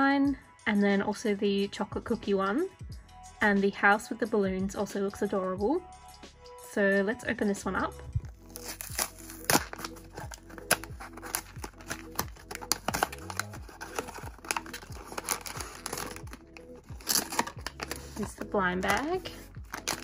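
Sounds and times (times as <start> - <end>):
soft background music: 0.0 - 20.0
packaging crinkling: 8.3 - 20.0
cardboard box tearing: 8.5 - 20.0.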